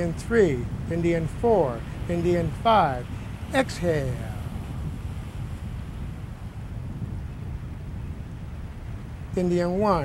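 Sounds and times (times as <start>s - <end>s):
wind blowing on microphone: 0.0s - 10.0s.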